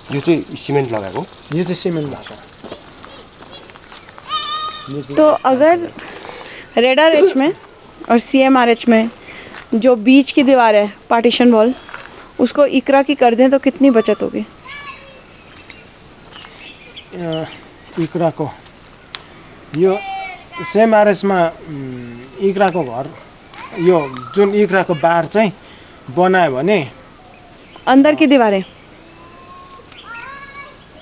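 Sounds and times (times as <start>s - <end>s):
man speaking: 0.0s - 2.5s, 17.1s - 18.6s, 20.6s - 23.2s, 23.8s - 27.0s
high-pitched insect trill: 0.0s - 31.0s.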